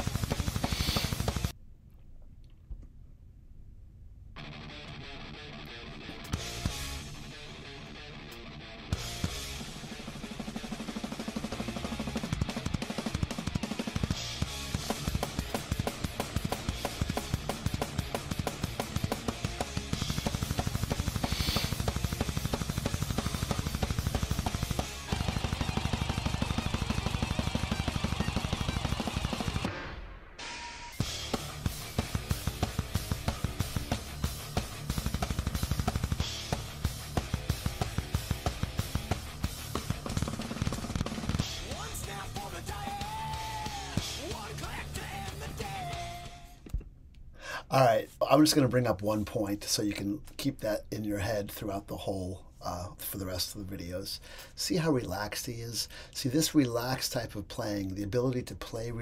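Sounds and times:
backing music track: 0:00.0 - 0:01.5, 0:04.4 - 0:30.2, 0:30.9 - 0:46.8
fast drum kit playing: 0:00.0 - 0:01.5, 0:09.0 - 0:29.8, 0:31.0 - 0:46.3.

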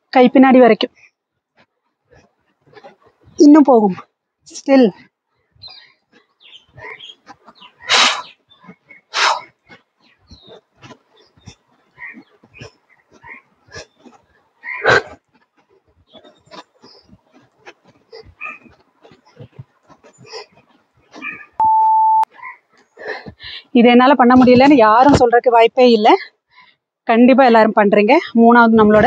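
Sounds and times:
interval timer beep: 0:21.6 - 0:22.3.

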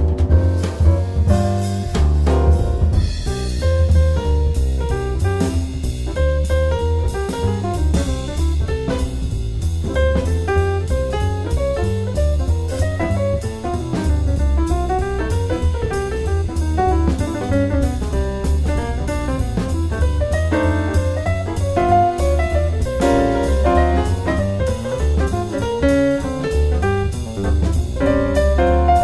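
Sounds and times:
piano melody: 0:00.0 - 0:29.0
walking bass line: 0:00.0 - 0:29.0.

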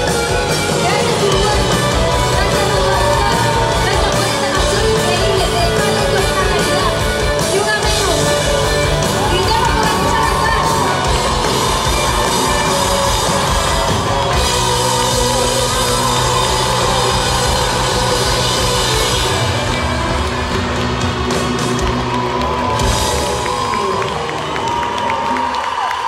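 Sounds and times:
live rock band playing loud: 0:00.0 - 0:24.7
crowd whooping and cheering: 0:00.0 - 0:26.0.

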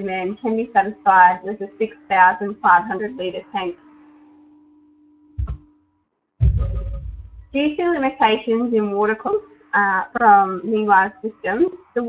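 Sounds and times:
faint room hiss: 0:00.0 - 0:12.0
steady low hum: 0:00.0 - 0:12.0
short thump: 0:05.4 - 0:05.7, 0:06.4 - 0:07.6.

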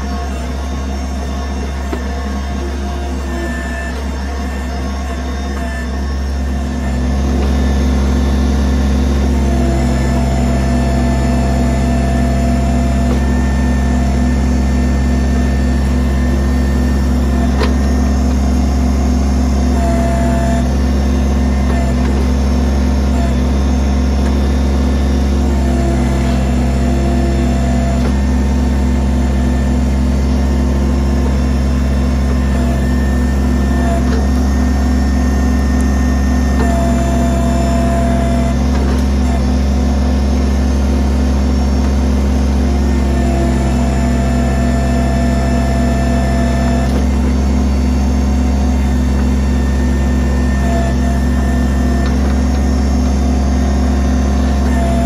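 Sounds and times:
diesel engine running: 0:00.0 - 0:55.0
hydraulic whine: 0:00.0 - 0:55.0.

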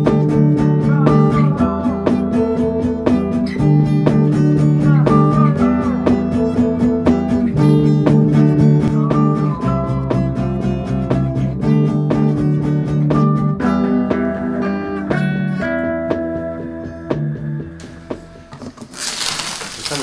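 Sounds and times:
strummed acoustic guitar: 0:00.0 - 0:17.0.

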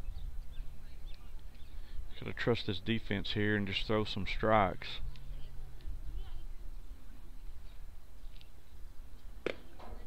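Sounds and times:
faint distant voices: 0:00.0 - 0:10.0
ball smacking into mitt: 0:09.4 - 0:09.8.

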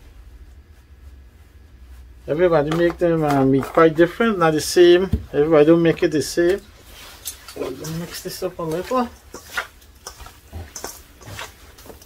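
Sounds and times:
hands mixing raw chicken: 0:00.0 - 0:12.0.

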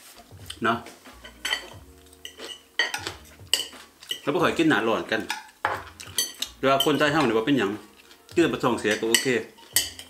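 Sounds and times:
cutlery clinking on plates: 0:01.2 - 0:04.3, 0:05.2 - 0:07.4, 0:08.9 - 0:10.0.

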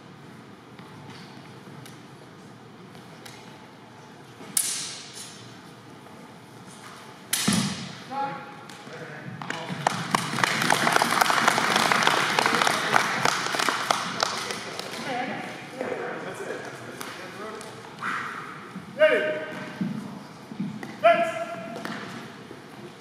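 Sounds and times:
onlookers clapping: 0:09.4 - 0:15.1.

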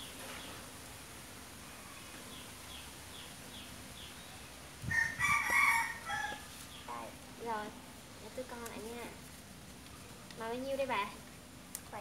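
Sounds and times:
rooster crowing: 0:04.9 - 0:06.6.

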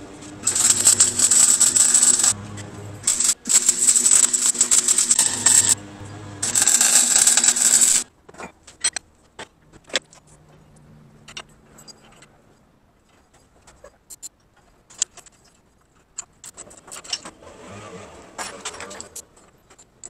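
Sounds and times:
welding arc crackling: 0:00.0 - 0:08.1.

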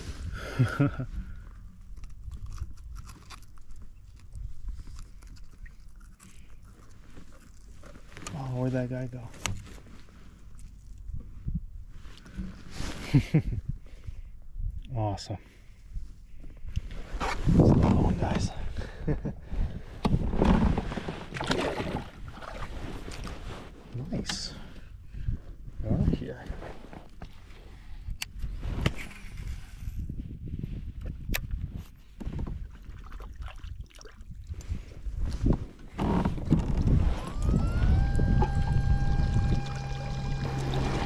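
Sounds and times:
water sloshing: 0:21.2 - 0:23.4, 0:37.2 - 0:41.0
electric motor whine: 0:36.7 - 0:41.0.

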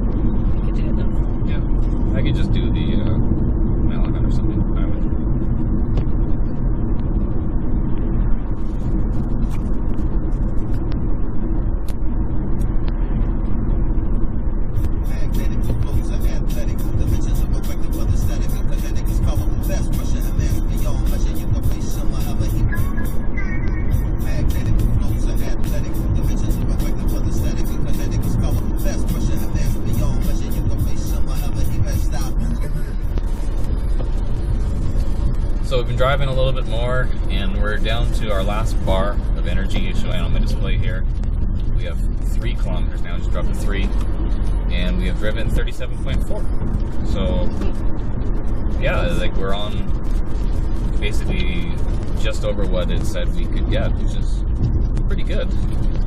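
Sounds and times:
tyre and road noise in car: 0:00.0 - 0:56.0
background music with quick beat: 0:14.8 - 0:35.3.

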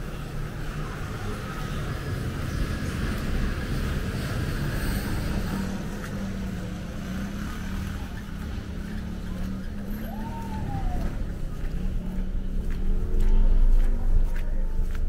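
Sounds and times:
traffic noise: 0:00.0 - 0:15.0
vehicle engine humming: 0:00.0 - 0:15.0.

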